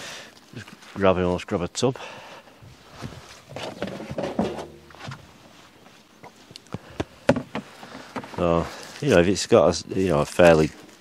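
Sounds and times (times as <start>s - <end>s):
onion skins rustling and crackling: 7.7s - 11.0s.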